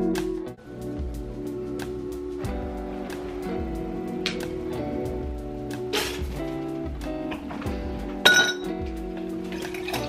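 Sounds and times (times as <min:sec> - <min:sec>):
background music: 0:00.0 - 0:10.0
drinking glass clinking: 0:08.2 - 0:08.7.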